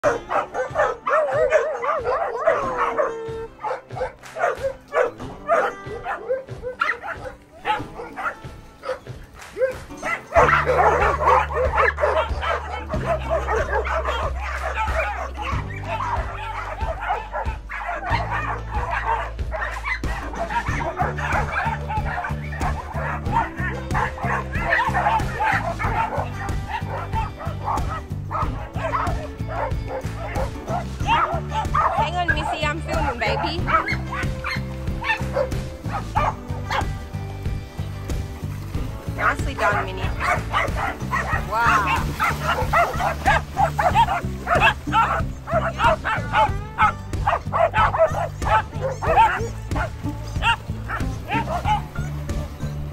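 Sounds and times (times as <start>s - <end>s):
background music with bass line: 0.0s - 52.9s
dogs barking and yipping: 0.0s - 52.9s.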